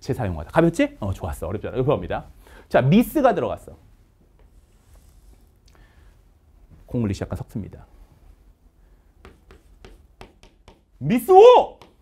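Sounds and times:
chalk writing on chalkboard: 4.4s - 5.5s, 9.2s - 10.9s.

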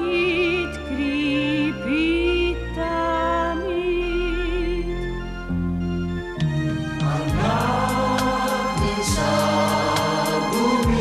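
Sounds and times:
steady cymbal beat: 6.4s - 11.0s
pop song with choral singing: 7.0s - 11.0s.

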